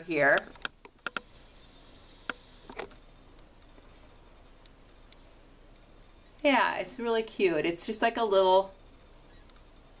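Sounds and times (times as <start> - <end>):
faint steady hiss: 0.0 - 10.0
small clicks: 0.3 - 1.4, 2.2 - 3.8, 9.3 - 9.7.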